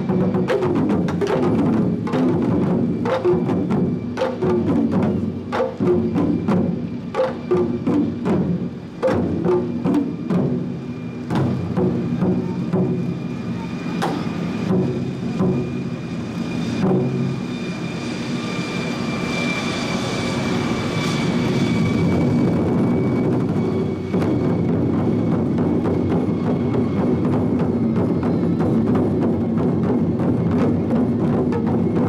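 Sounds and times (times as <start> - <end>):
drum ensemble playing: 0.0 - 16.0, 24.1 - 32.0.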